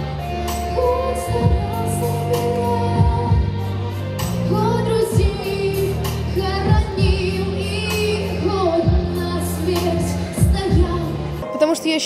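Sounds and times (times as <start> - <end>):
woman singing slow song: 0.1 - 12.0.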